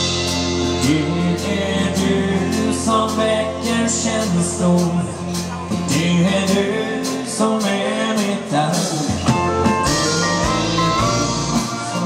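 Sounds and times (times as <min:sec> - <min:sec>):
live band playing dance song: 0:00.0 - 0:12.0
man singing lead vocal: 0:00.5 - 0:12.0.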